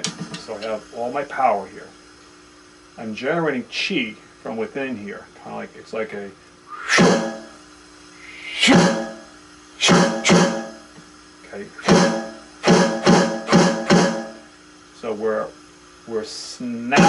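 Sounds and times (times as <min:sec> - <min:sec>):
electronic drum pad hits: 0:06.9 - 0:07.6, 0:08.7 - 0:10.9, 0:11.8 - 0:14.5.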